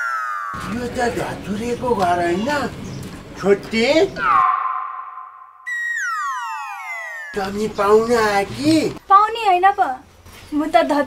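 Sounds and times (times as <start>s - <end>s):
held electronic tone: 4.2s - 7.8s
synth note sliding down: 4.3s - 7.8s.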